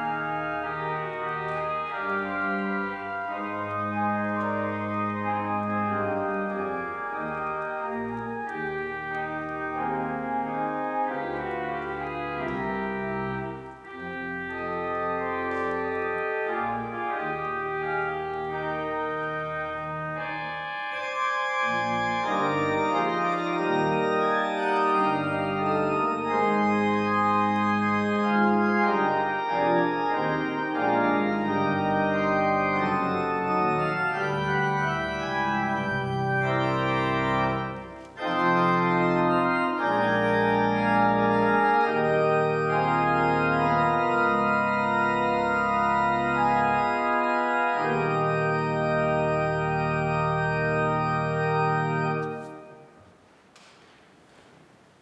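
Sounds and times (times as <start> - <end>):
church organ playing chords: 0.0 - 53.1.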